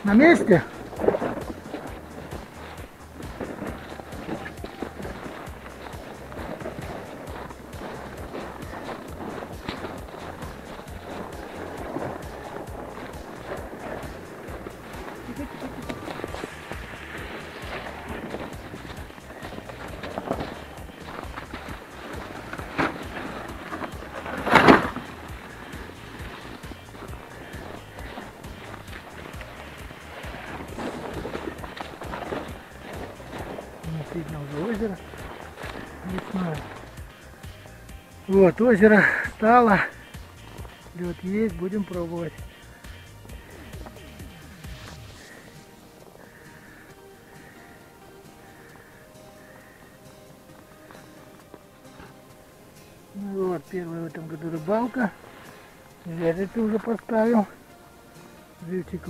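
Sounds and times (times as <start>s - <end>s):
handheld camera rustle: 0.0s - 47.6s
footsteps in snow: 0.0s - 59.0s.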